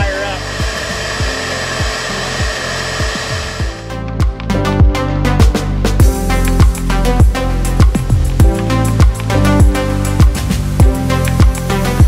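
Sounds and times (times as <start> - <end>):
bee vacuum motor running: 0.0 - 4.5
background music beat: 0.0 - 12.0.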